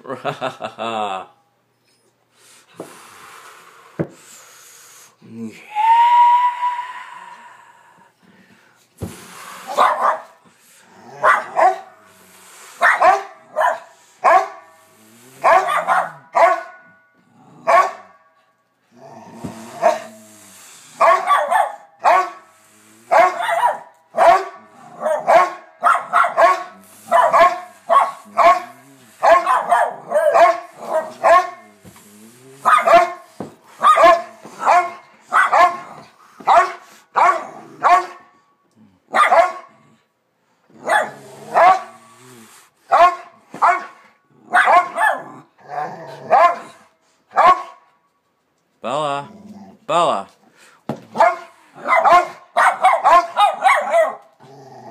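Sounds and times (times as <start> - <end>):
dogs barking: 9.7 - 10.4, 11.2 - 12.0, 12.8 - 14.7, 15.4 - 16.9, 17.6 - 18.2, 21.0 - 22.5, 23.1 - 31.7, 32.6 - 38.2, 39.1 - 39.8, 40.8 - 42.0, 42.9 - 45.4, 46.3 - 47.8, 51.1 - 54.3.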